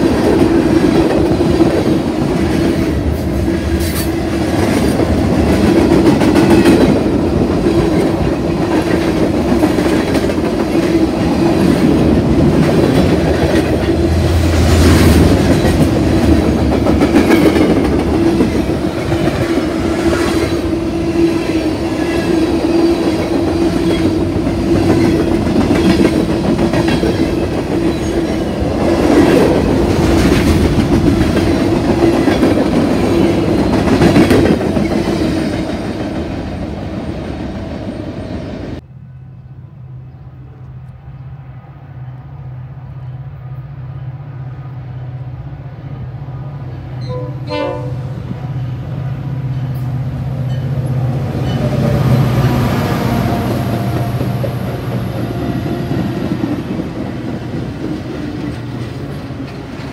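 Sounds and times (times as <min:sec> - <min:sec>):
clickety-clack over rail joints: 0:00.0 - 0:20.7, 0:21.4 - 0:36.4, 0:53.2 - 0:59.9
train wheels rumbling on rails: 0:00.0 - 0:38.8, 0:47.7 - 0:59.9.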